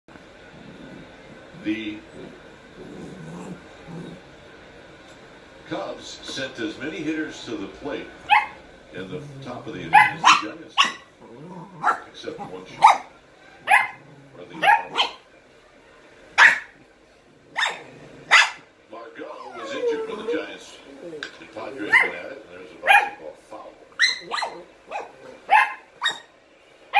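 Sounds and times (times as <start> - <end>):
puppy growling: 0.2 - 4.6, 8.2 - 15.3, 16.4 - 23.2, 23.9 - 26.3
dog barking sharply: 9.9 - 11.0, 16.4 - 16.8
low wavering dog sound: 19.3 - 22.2.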